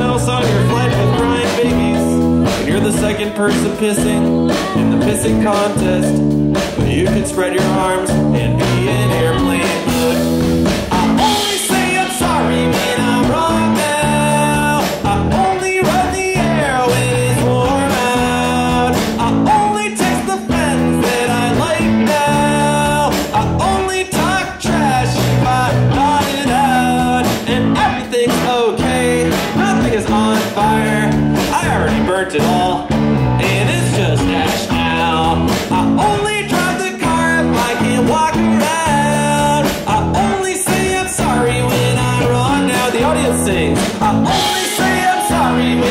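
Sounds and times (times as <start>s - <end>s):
drum kit: 0.0s - 45.9s
electric guitar: 0.0s - 45.9s.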